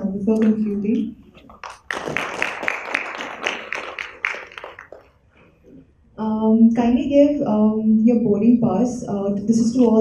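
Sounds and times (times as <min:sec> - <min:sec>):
audience clapping: 0:01.4 - 0:05.2.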